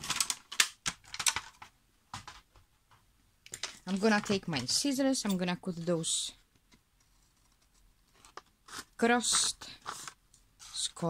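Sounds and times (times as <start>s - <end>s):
paper and board handling clicks: 0.0s - 2.4s.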